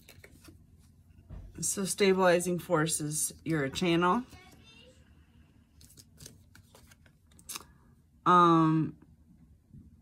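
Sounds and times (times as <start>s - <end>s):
cards sliding: 5.8s - 7.7s.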